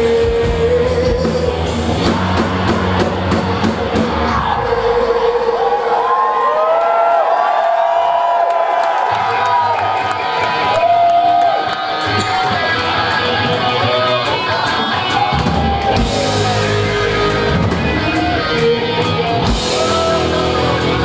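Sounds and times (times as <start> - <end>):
heavy metal band playing: 0.0 - 6.0, 10.2 - 21.0
crowd cheering and whooping: 1.6 - 21.0.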